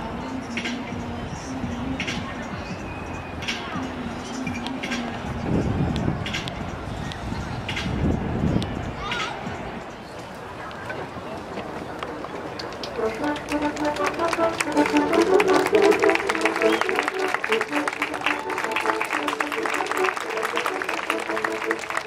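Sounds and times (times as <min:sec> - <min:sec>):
outdoor crowd talking: 0:00.0 - 0:22.0
baroque ensemble playing: 0:13.0 - 0:21.9.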